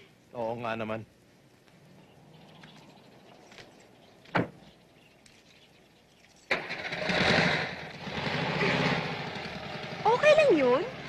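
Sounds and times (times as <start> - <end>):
car engine starting and running: 6.5 - 11.0.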